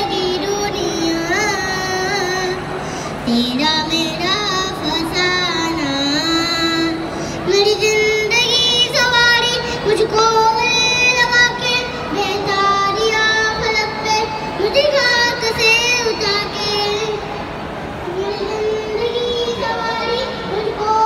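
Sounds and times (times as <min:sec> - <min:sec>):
boy singing through pa: 0:00.0 - 0:17.4, 0:18.0 - 0:21.0.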